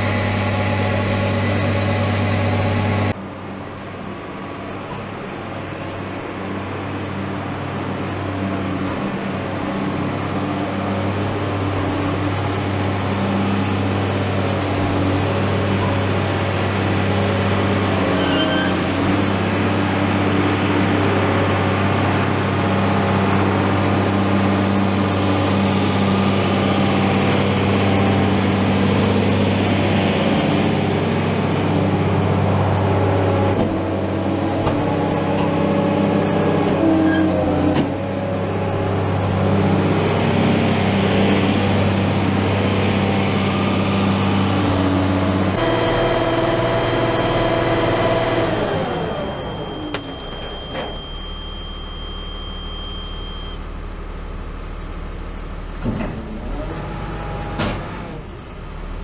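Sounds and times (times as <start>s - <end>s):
tractor engine running: 0.0s - 3.2s, 37.4s - 56.4s.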